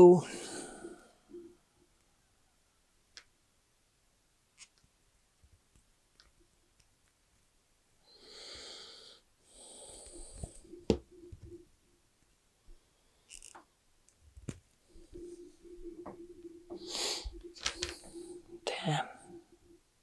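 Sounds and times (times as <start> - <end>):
breathy hisses: 0.2 - 1.6, 8.1 - 10.8, 14.9 - 19.6
small ticks: 4.6 - 4.9, 13.2 - 14.2
faint small clicks: 4.6 - 7.5.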